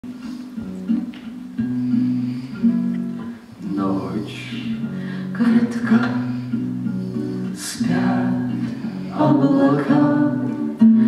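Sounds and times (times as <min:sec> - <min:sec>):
slow waltz on plucked strings: 0:00.1 - 0:11.0.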